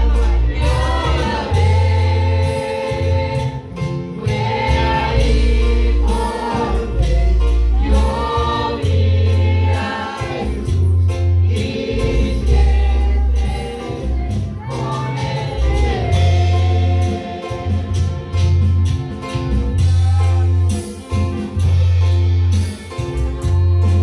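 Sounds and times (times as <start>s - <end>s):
deep bass notes: 0.0s - 22.6s
church band drums and keyboard: 0.0s - 24.0s
voices singing worship song: 0.0s - 24.0s.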